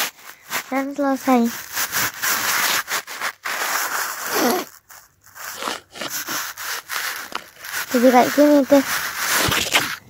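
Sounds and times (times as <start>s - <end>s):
plastic cup rubbing on microphone: 0.0s - 10.0s.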